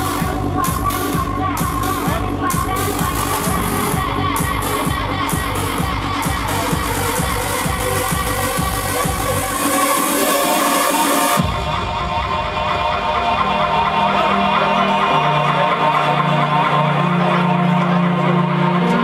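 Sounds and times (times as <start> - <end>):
electronic dance music: 0.0 - 19.0.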